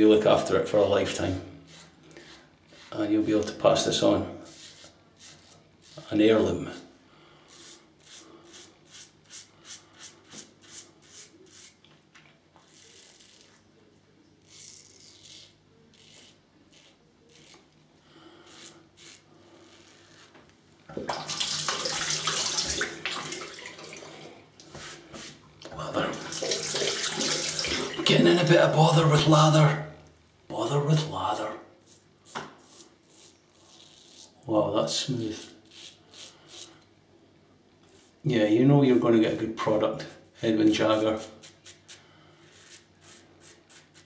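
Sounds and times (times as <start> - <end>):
razor scraping through stubble: 1.7 - 3.8, 4.4 - 6.2, 7.5 - 11.8, 12.6 - 13.7, 14.4 - 17.8, 18.4 - 20.4, 40.5 - 44.0.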